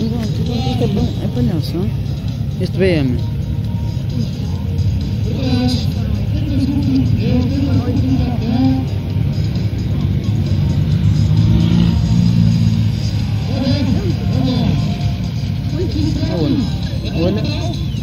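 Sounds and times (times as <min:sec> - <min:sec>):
car engines revving: 0:00.0 - 0:18.0
spectators talking: 0:00.0 - 0:18.0.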